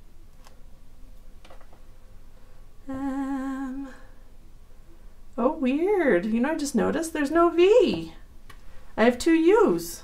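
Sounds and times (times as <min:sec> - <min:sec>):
woman humming: 0:02.8 - 0:04.2.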